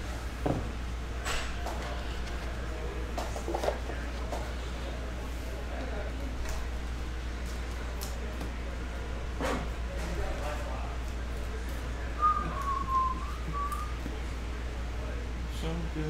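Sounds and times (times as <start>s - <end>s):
person whistling: 12.2s - 13.9s.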